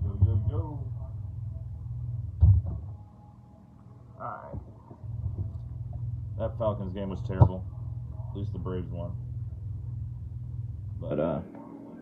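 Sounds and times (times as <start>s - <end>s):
steady low hum: 0.0s - 12.0s
loud thump: 2.4s - 3.0s.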